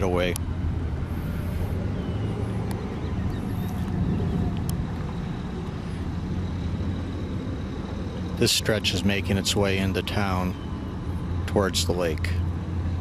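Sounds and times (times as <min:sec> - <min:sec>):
car engine and tyres rumbling: 0:00.0 - 0:13.0
faint clicks: 0:03.8 - 0:04.8.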